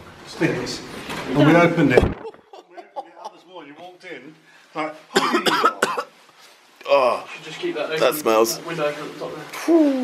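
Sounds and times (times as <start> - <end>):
person coughing: 5.2 - 6.1.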